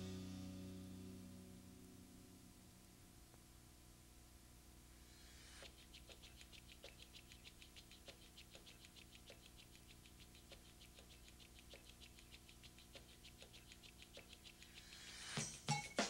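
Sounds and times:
low steady hum: 0:00.0 - 0:15.8
faint rapid ticking: 0:05.5 - 0:15.6.

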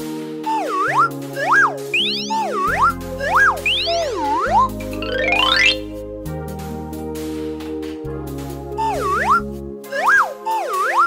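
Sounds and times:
children's cartoon music: 0:00.0 - 0:11.0.

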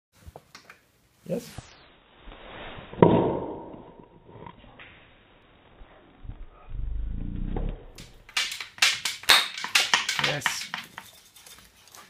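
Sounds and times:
low rumble: 0:05.8 - 0:08.0.

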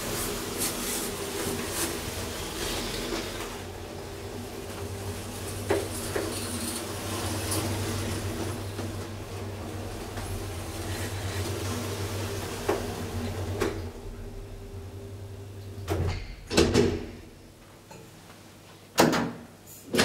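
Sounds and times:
hydraulic elevator humming: 0:00.0 - 0:17.6.

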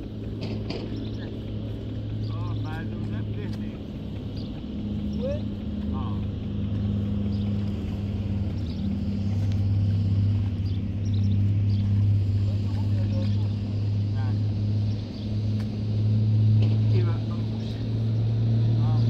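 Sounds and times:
low engine drone: 0:00.0 - 0:19.0.

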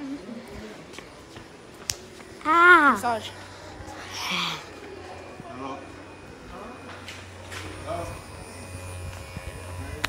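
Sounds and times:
electric massager buzzing hum: 0:00.0 - 0:10.0.

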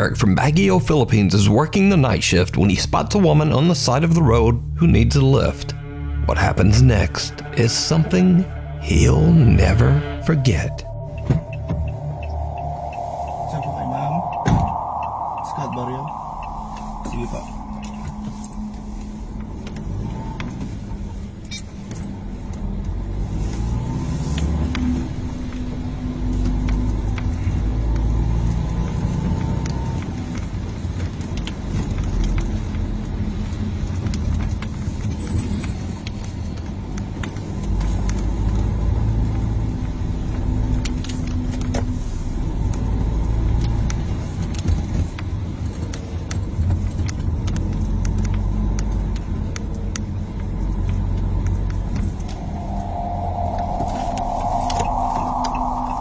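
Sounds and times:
car engine and road rumble: 0:00.0 - 0:56.0.

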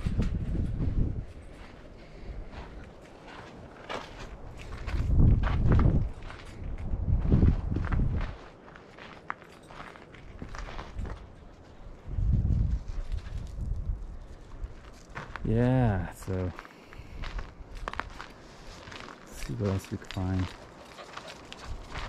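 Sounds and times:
footsteps crunching on gravel: 0:01.0 - 0:22.0.

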